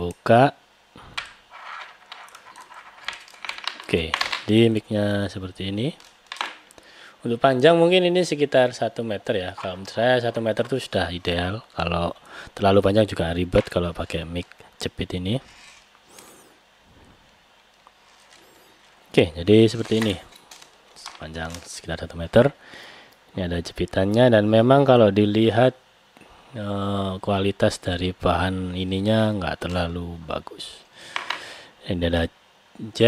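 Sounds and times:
microphone cable rustling: 9.3s - 11.6s, 16.9s - 22.3s
microphone cable scratching: 15.4s - 15.9s.

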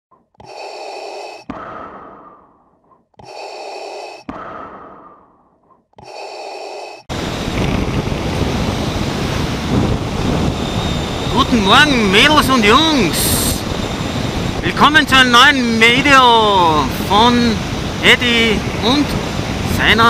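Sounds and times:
wind rush of motorcycle riding: 7.1s - 20.0s.

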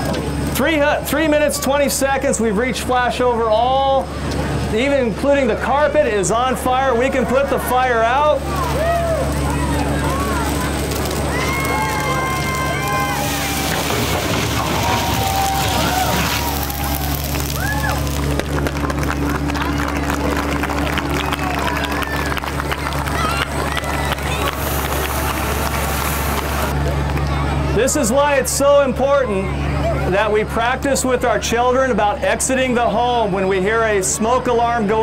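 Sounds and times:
low engine hum: 0.0s - 32.0s
crowd voices and calls: 0.0s - 35.0s
fire hose spraying water: 6.6s - 26.8s
flames hissing into steam: 11.0s - 17.9s, 24.2s - 26.7s.

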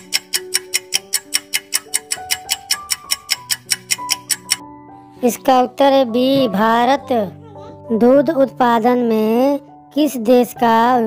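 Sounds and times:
clock ticking: 0.0s - 4.6s
soft background music: 0.0s - 11.0s.

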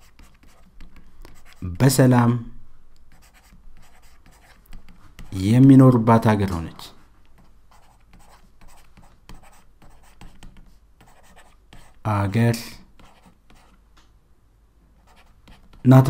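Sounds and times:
pen scratching on paper: 0.0s - 1.6s, 3.1s - 5.4s, 7.4s - 12.0s, 13.0s - 13.8s, 15.0s - 15.9s.

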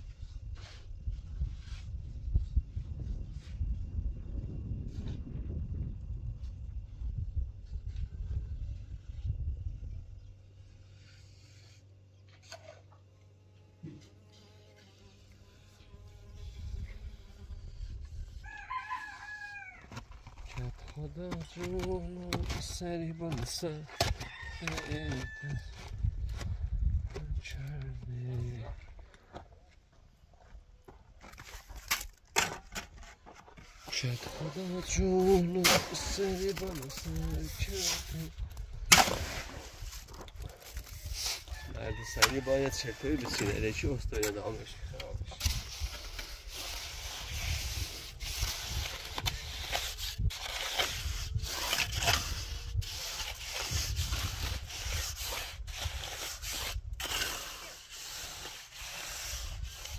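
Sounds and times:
mortar scraping: 13.8s - 59.9s.

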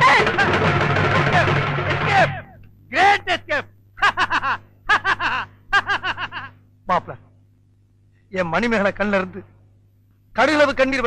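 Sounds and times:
faint low hum: 0.0s - 11.0s
person laughing: 4.0s - 6.6s.

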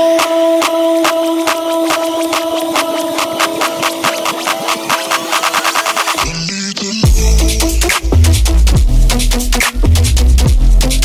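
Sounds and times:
rapid drum roll: 1.0s - 6.3s
synth lines sliding in pitch: 1.0s - 6.3s.

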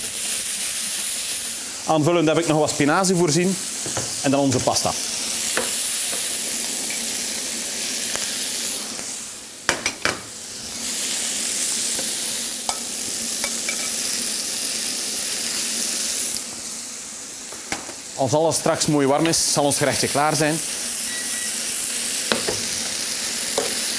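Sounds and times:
food sizzling in a frying pan: 0.0s - 23.9s.

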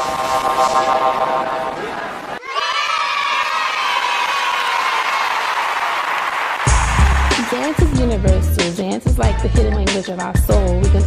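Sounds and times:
sustained wash of sound: 0.0s - 2.4s
hip-hop beat with heavy bass: 6.7s - 11.0s.

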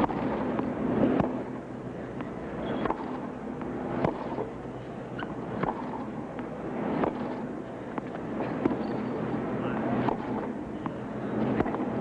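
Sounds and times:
tennis ball struck by racket: 0.0s - 1.4s, 2.2s - 3.2s, 4.0s - 4.5s, 5.2s - 6.1s, 7.0s - 7.4s, 8.0s - 9.0s, 10.0s - 11.0s, 11.6s - 11.9s
steady background noise: 0.0s - 12.0s.

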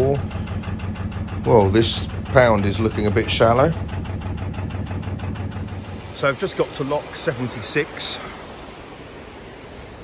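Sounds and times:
boat diesel engine running: 0.0s - 10.0s.

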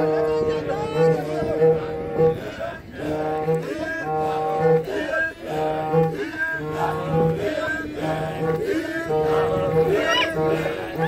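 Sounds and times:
group singing chant: 0.2s - 11.0s.

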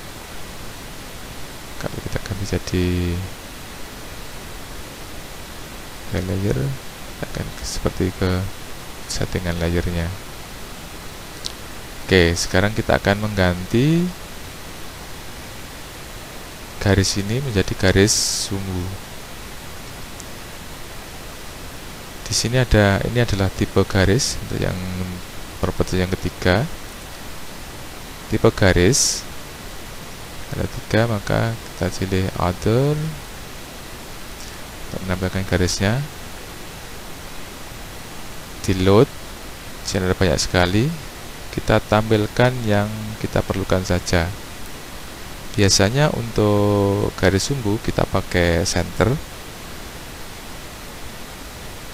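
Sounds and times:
background hiss: 0.0s - 51.9s
person speaking: 1.8s - 3.4s, 6.1s - 10.2s, 11.4s - 14.3s, 16.8s - 19.0s, 22.2s - 26.8s, 28.3s - 29.3s, 30.5s - 33.3s, 34.4s - 36.2s, 38.6s - 39.1s, 39.8s - 44.4s, 45.5s - 49.3s.

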